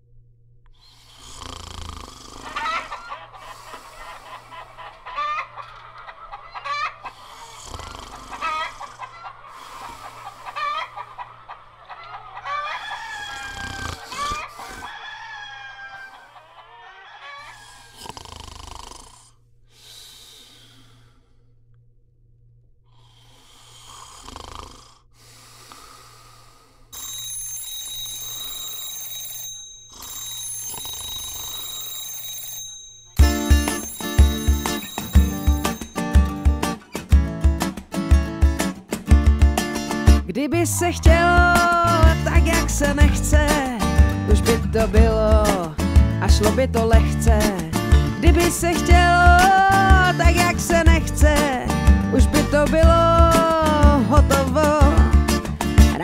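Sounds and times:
hens clucking: 0:02.4 - 0:17.8, 0:40.8 - 0:44.6
rooster crowing: 0:02.5 - 0:05.8, 0:06.5 - 0:07.1, 0:08.4 - 0:09.3, 0:10.0 - 0:11.2, 0:11.8 - 0:17.8
alarm clock ringing: 0:27.0 - 0:36.9
acoustic band playing: 0:33.2 - 0:56.0.

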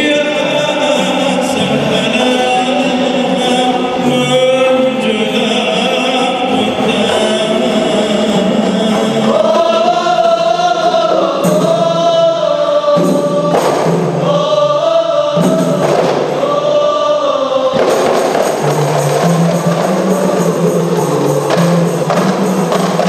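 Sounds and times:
frame drum strokes: 0:00.0 - 0:14.6, 0:15.3 - 0:16.8, 0:17.7 - 0:23.0
group of voices singing: 0:00.0 - 0:23.0.

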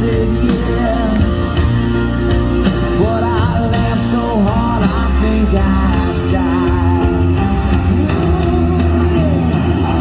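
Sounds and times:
rock song over loudspeaker: 0:00.0 - 0:10.0.

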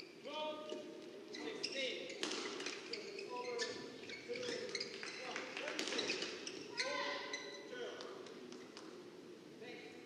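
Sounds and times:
shoes squeaking on court: 0:00.0 - 0:07.7.

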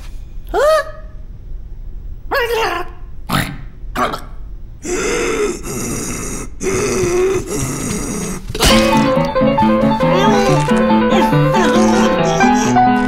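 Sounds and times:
music: 0:08.6 - 0:13.0
cartoon character grunting: 0:10.1 - 0:13.0.

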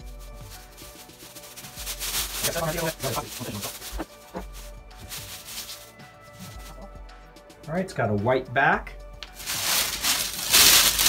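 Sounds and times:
plastic wrap crinkling: 0:00.0 - 0:07.0, 0:09.2 - 0:11.0.

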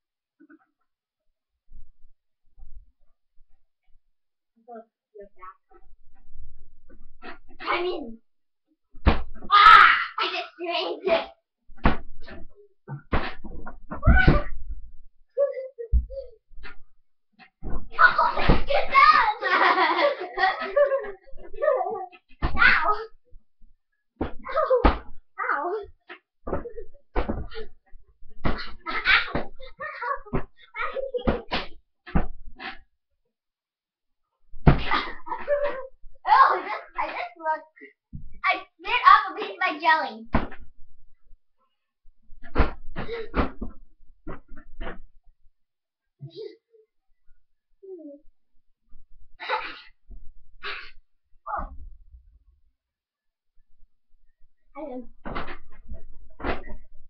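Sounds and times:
child's voice: 0:07.6 - 0:08.2, 0:09.5 - 0:11.3, 0:15.4 - 0:16.4, 0:18.0 - 0:21.0, 0:21.6 - 0:23.1, 0:24.4 - 0:26.0, 0:29.3 - 0:31.5, 0:35.3 - 0:40.3, 0:46.2 - 0:46.8, 0:47.8 - 0:48.2, 0:54.8 - 0:55.1.

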